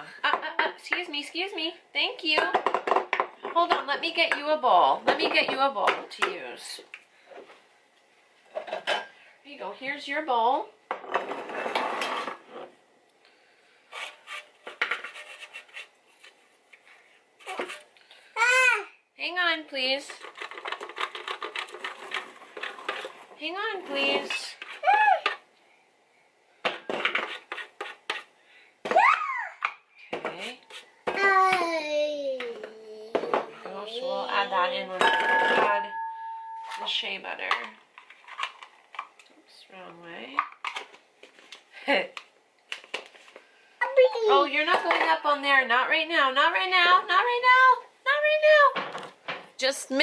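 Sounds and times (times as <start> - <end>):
toddler squealing and crying: 24.8 - 25.3, 28.9 - 29.6.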